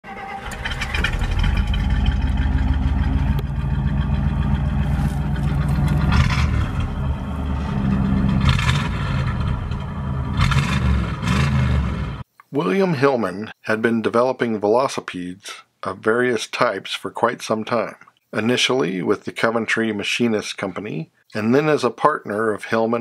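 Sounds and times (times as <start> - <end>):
car engine revving: 0.1 - 12.2.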